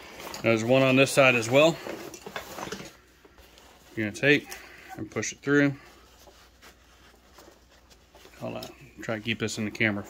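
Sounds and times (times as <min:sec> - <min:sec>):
nylon fabric rustling: 0:00.0 - 0:10.0.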